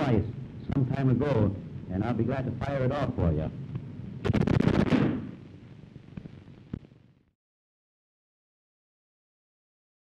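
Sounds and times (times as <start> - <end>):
single sharp gunshot crack: 4.3 - 5.4.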